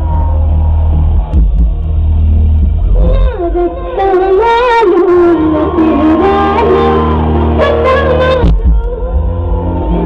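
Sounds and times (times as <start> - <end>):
live concert music with heavy bass: 0.0 - 10.0
woman singing into microphone: 3.0 - 10.0.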